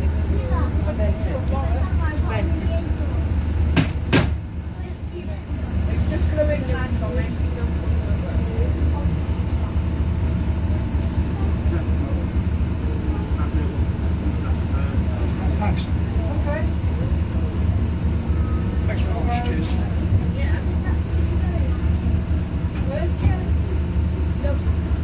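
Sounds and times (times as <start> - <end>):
faint voices: 0.0 - 3.8, 4.5 - 25.0
diesel bus engine idling: 0.0 - 25.0
sharp knocks: 3.7 - 4.4.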